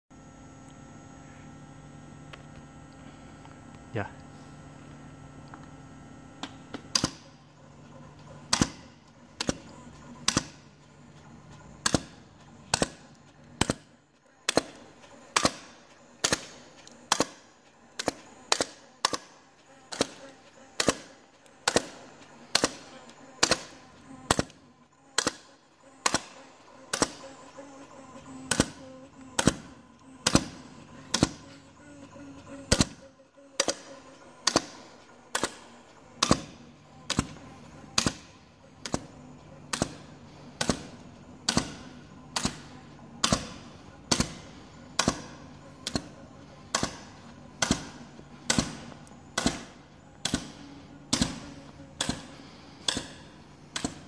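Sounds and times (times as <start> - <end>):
low steady machine hum: 0.1 - 54.0
hole punch clicks: 33.6 - 34.8.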